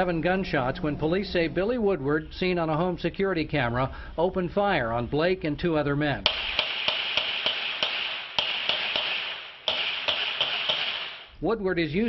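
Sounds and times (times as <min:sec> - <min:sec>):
rapid gunshots: 0:06.3 - 0:11.4
steady hiss: 0:06.3 - 0:11.4.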